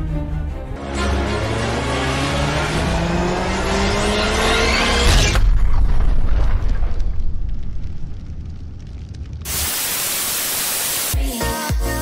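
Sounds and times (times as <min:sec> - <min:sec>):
car engine revving: 0:00.8 - 0:05.3.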